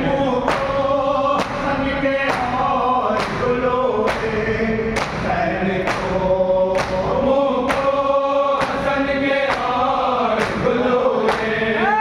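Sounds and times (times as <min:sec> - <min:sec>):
men chanting a lament: 0:00.0 - 0:12.0.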